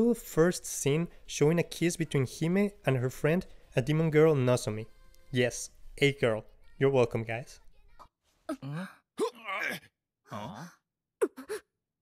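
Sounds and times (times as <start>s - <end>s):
cartoon character gasping: 8.5s - 11.7s
cartoon character sighing: 8.5s - 11.7s.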